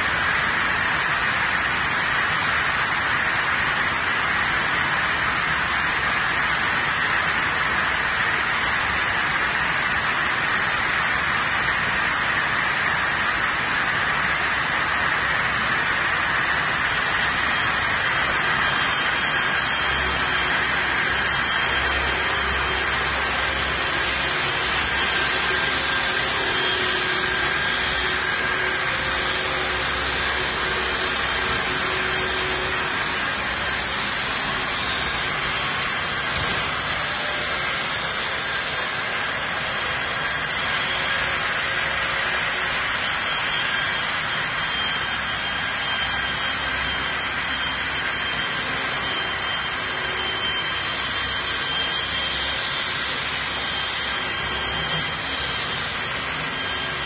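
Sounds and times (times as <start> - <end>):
saw running steadily: 0.0 - 57.0.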